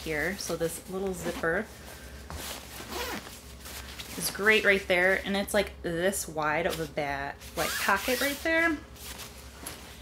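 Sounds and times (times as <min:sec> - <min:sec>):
bag fabric rustling: 0:01.0 - 0:04.6
zipper being pulled open: 0:02.8 - 0:03.3.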